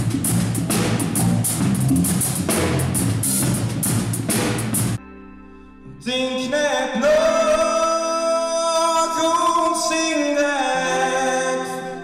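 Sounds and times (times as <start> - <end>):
drum kit cymbals and drums: 0.0 - 5.0
live band playing: 0.0 - 5.0.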